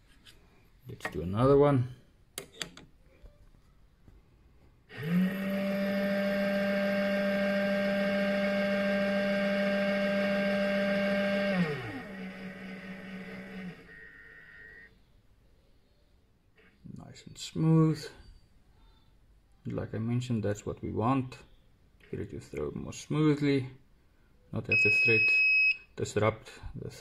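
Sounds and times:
powder dispenser motor whining: 0:04.9 - 0:14.9.

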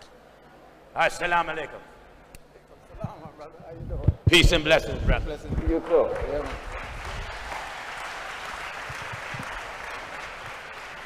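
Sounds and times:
microphone handling clicks and thumps: 0:03.0 - 0:05.6.

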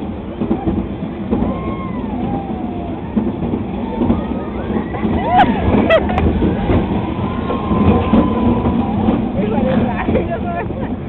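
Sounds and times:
roller coaster rumbling on track: 0:00.0 - 0:11.0.

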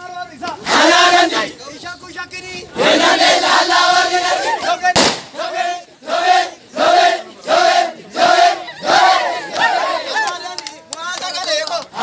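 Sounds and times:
men shouting a chant in unison: 0:00.3 - 0:01.6.

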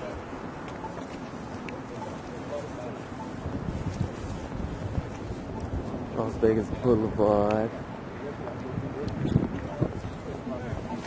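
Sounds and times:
faint street traffic: 0:00.0 - 0:11.0
wind buffeting microphone: 0:02.8 - 0:11.0.

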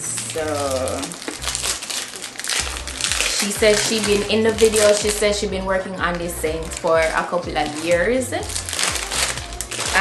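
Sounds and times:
paper and cardboard crinkling: 0:00.0 - 0:05.4, 0:06.1 - 0:10.0.

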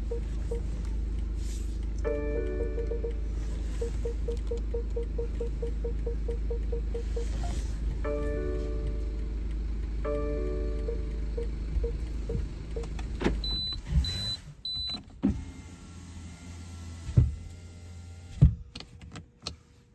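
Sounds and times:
low steady hum: 0:00.0 - 0:14.9
short high beeps: 0:03.8 - 0:07.7.

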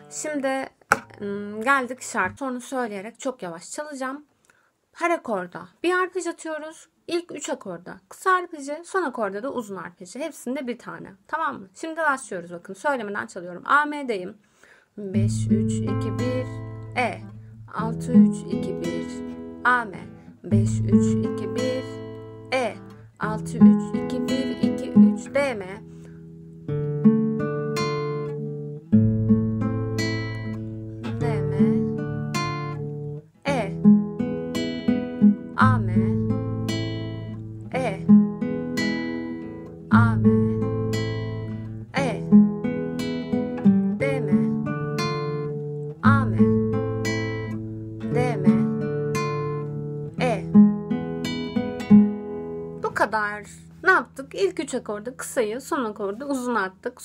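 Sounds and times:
acoustic guitar fingerpicked slowly: 0:15.2 - 0:53.8.

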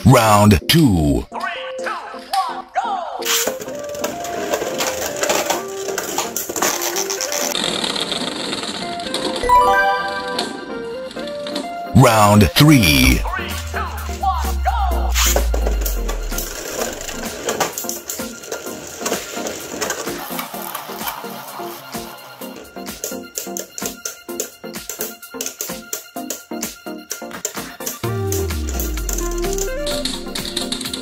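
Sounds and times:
background music: 0:00.0 - 0:07.6, 0:09.0 - 0:31.0.

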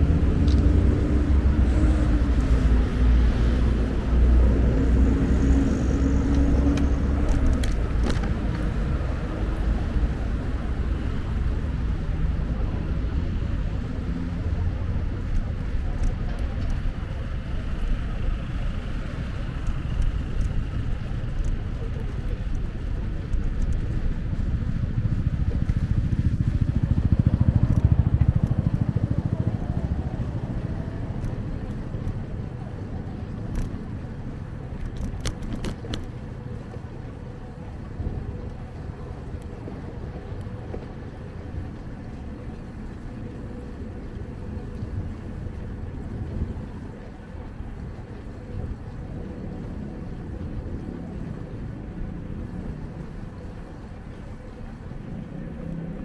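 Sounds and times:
bicycle tyres rolling on asphalt: 0:00.0 - 0:56.0
wind rumble on microphone: 0:00.0 - 0:56.0.

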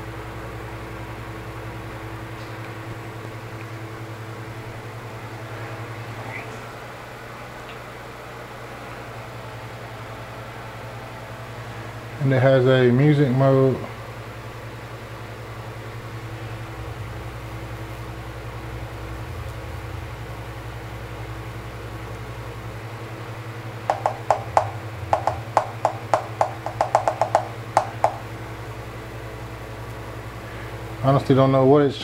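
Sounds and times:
low hum: 0:13.9 - 0:30.6
hand tapping on hard surface: 0:23.9 - 0:28.3.

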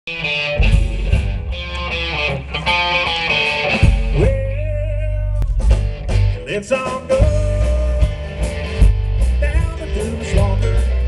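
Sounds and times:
live country-rock band: 0:00.1 - 0:11.0.

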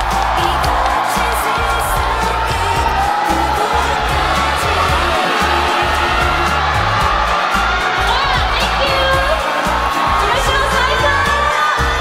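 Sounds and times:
crowd noise: 0:00.0 - 0:12.0
loud pop music over pa: 0:00.0 - 0:12.0.

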